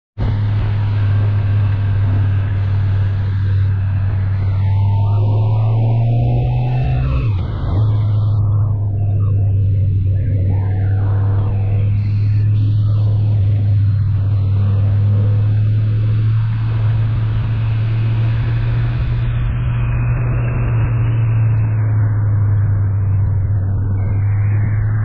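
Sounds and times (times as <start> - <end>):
road noise: 0.2 - 25.0.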